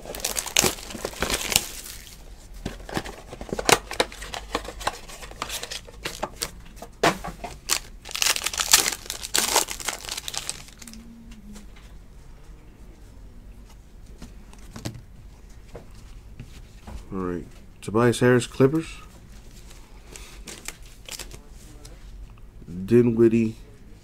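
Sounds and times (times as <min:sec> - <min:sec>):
box and plastic wrapper tearing: 0:00.0 - 0:06.5, 0:07.5 - 0:11.0, 0:20.4 - 0:21.4.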